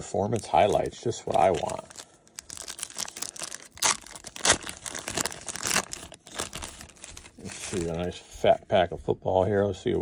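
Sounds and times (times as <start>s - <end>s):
plastic wrapper tearing and crinkling: 0.0s - 8.1s.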